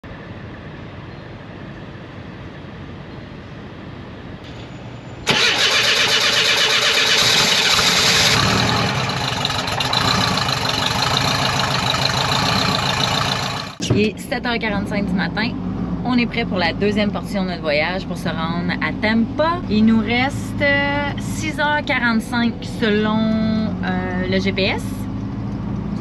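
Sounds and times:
car engine starting and idling: 5.2s - 26.0s.

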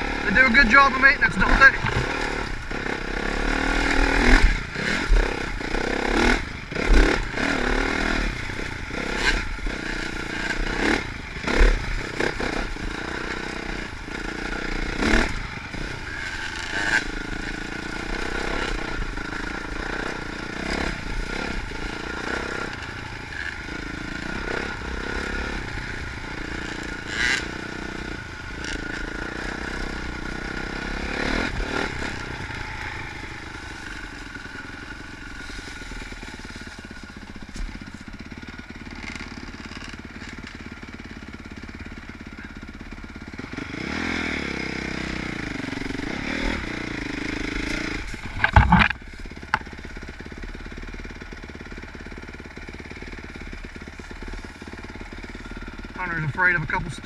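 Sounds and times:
dirt bike engine revving: 0.0s - 57.0s
bike clattering over rough ground: 48.1s - 49.8s.

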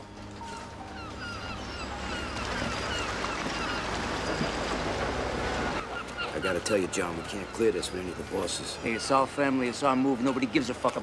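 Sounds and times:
gulls calling: 0.0s - 11.0s.

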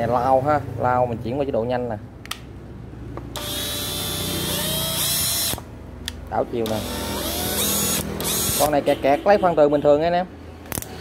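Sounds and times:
cordless drill whining: 3.4s - 5.7s, 6.6s - 8.8s.

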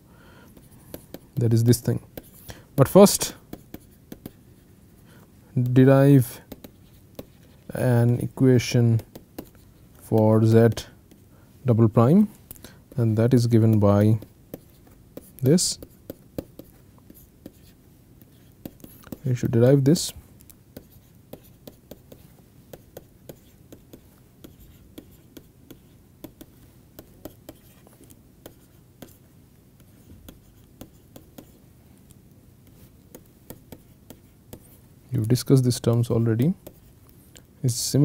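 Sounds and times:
stylus tapping and scratching: 0.5s - 4.7s, 5.6s - 11.3s, 11.9s - 38.0s.

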